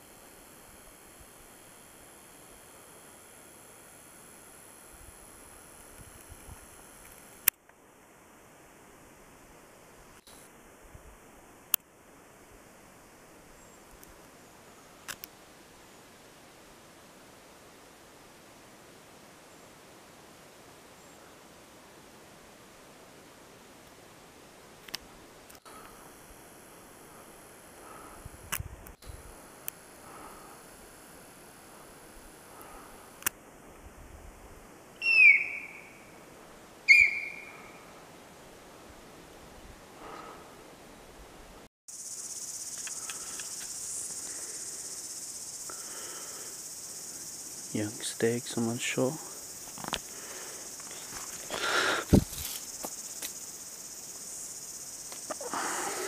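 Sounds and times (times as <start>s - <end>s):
rustle: 0.0s - 56.0s
insect chorus: 24.7s - 33.7s, 34.7s - 38.4s, 40.0s - 40.8s, 41.9s - 56.0s
deer alarm call squeals: 35.0s - 36.1s, 36.9s - 37.8s.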